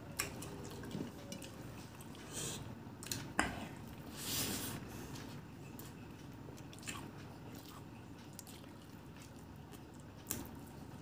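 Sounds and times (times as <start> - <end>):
man chewing food: 0.0 - 11.0.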